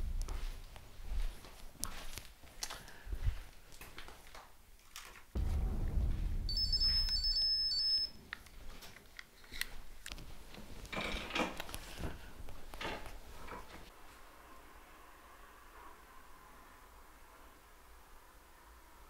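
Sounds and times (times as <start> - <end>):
footsteps: 0.0 - 4.4, 5.4 - 7.5, 8.1 - 10.9
low rumble: 5.4 - 8.0
high electronic beeping: 6.5 - 8.2.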